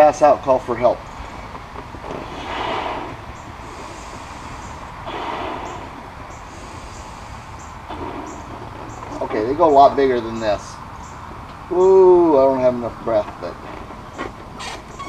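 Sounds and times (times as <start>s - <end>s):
breaths blowing up a balloon: 2.1s - 7.6s.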